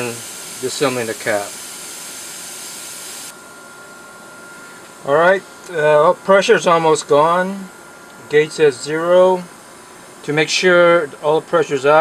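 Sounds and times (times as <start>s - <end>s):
compressed air hissing: 0.0s - 3.3s.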